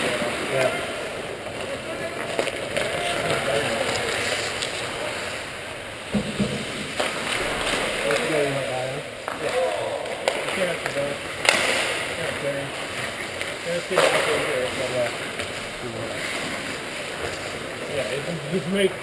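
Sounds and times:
stick and puck clacks: 1.4s - 5.0s, 6.1s - 8.5s, 9.2s - 12.1s, 12.9s - 15.6s
skate blades scraping ice: 1.4s - 5.4s
sharp knocks: 6.1s - 7.9s.

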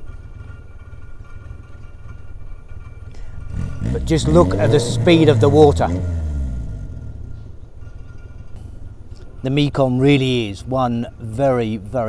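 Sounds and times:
riverside ambience rumble: 0.0s - 12.0s.

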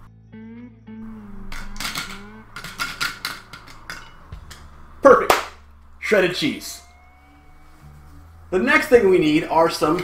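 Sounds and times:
man humming: 0.5s - 2.6s.

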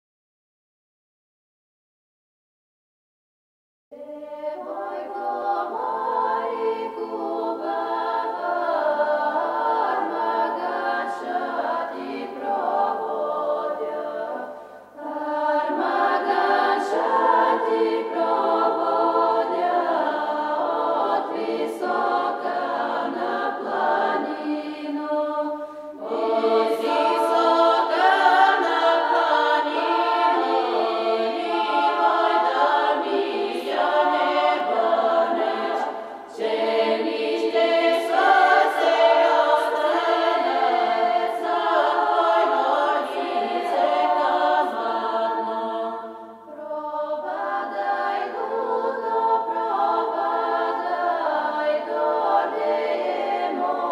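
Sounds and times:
women's choir singing unaccompanied: 3.9s - 53.9s.

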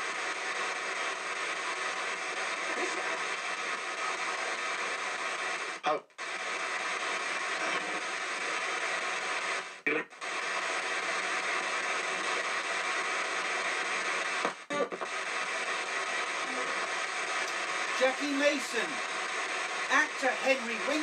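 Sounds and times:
choppy radio broadcast fragments: 0.0s - 21.0s
radio static: 0.0s - 21.0s.

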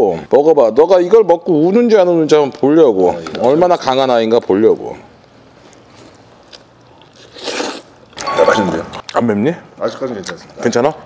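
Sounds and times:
faint eating noises: 3.0s - 10.9s
noisy noodle slurp: 7.1s - 8.1s.

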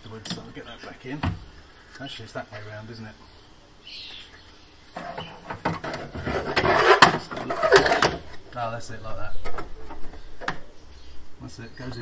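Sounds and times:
bracket scraping against panel: 5.0s - 8.4s.

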